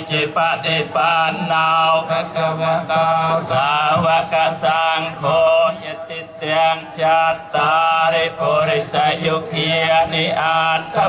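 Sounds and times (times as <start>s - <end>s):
monks chanting in unison: 0.0s - 11.0s.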